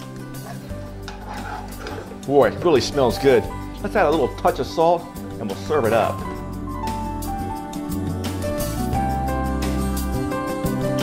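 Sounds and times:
soft background music: 0.0s - 11.0s
utensil stirring in skillet: 0.2s - 2.3s.

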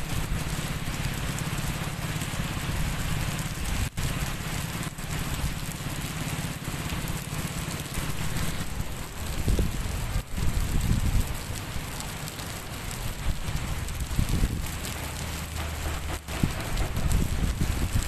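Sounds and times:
steady rain falling: 0.0s - 18.0s
low rumble: 7.9s - 11.6s, 12.6s - 18.0s.

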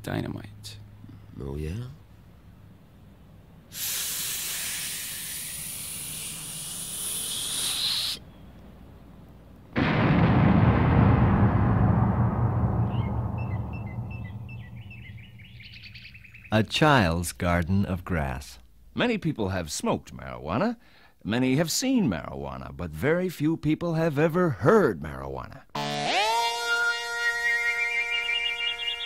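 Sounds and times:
hissing fuse: 3.8s - 8.2s
cartoon bird chirps: 4.6s - 8.3s, 25.8s - 29.0s
loud explosion rumbling: 9.8s - 16.0s.

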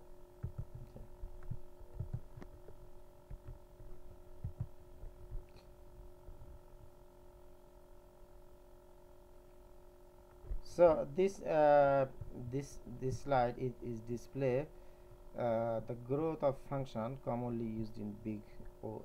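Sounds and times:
electrical hum: 0.0s - 19.0s
faint low thumps: 0.4s - 5.6s.

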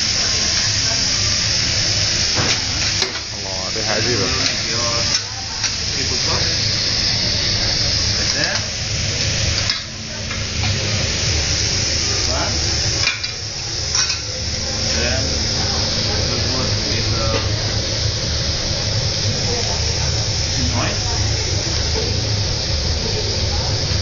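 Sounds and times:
seafood sizzling: 0.0s - 24.0s
metal utensils tapping and scraping: 13.0s - 14.3s.

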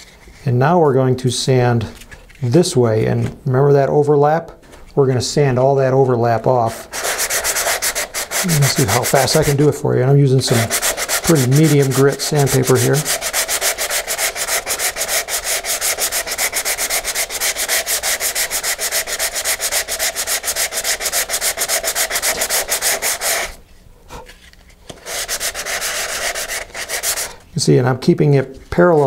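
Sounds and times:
sandpaper rubbing back and forth: 6.8s - 9.6s, 10.5s - 23.6s, 24.9s - 27.4s.

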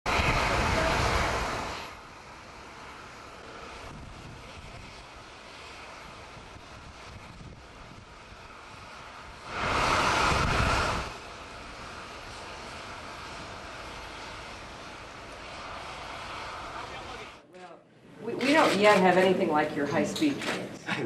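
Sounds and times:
loud rush of jet noise: 0.1s - 20.8s
jet engine rushing hum: 0.1s - 21.0s.

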